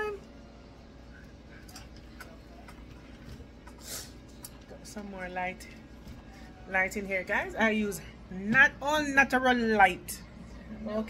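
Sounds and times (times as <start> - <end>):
low room hum: 0.0 - 11.0.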